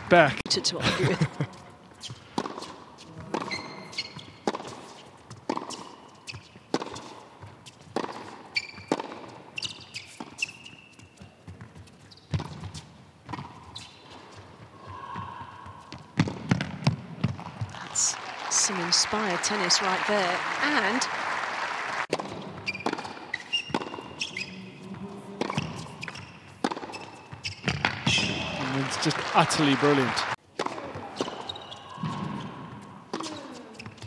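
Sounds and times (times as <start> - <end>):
shoes squeaking on court: 1.5 - 17.7, 22.1 - 28.4, 30.6 - 34.0
tennis ball hit by rackets: 2.1 - 10.6, 16.1 - 17.6, 22.1 - 24.4, 25.4 - 28.5, 30.6 - 34.0.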